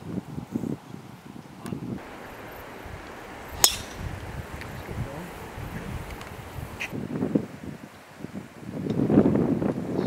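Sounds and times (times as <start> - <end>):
golf club striking ball: 2.0 - 4.7.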